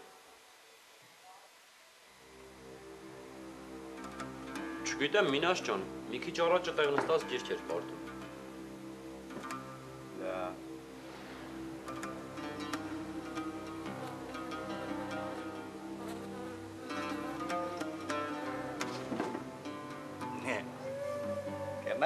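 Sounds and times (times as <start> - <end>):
plucked string instrument: 3.8 - 22.0.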